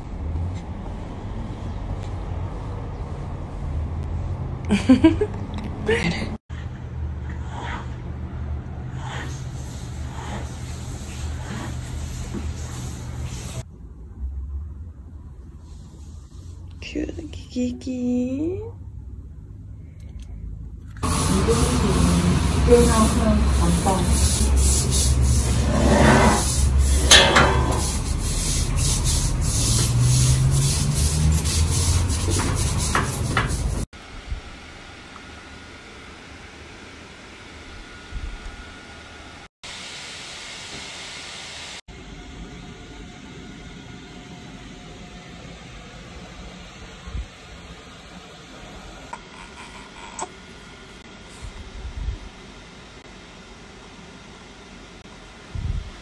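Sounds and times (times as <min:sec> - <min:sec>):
broom scrubbing wet tiled floor: 0:08.9 - 0:13.7, 0:21.0 - 0:33.9.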